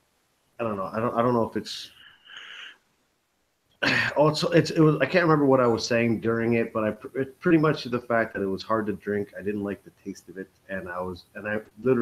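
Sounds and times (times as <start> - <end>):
man speaking: 0.6 - 2.7, 3.8 - 12.0
man breathing: 1.9 - 2.9.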